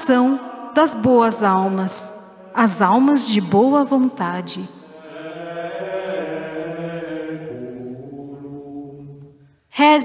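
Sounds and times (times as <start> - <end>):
slow chanting with long held notes: 4.7 - 9.6.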